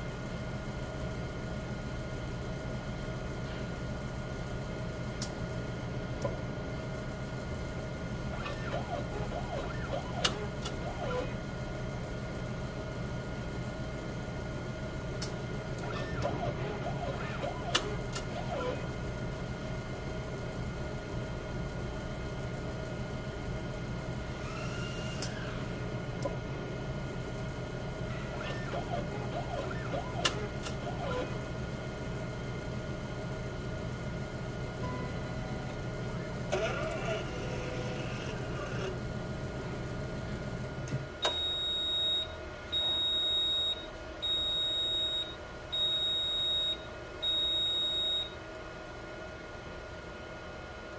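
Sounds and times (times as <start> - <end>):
analyzer motors and fans humming: 0.0 - 50.9
sampling arm clicks and whirs: 8.2 - 11.5, 15.2 - 19.1, 24.3 - 26.7, 28.0 - 31.6, 35.6 - 39.1.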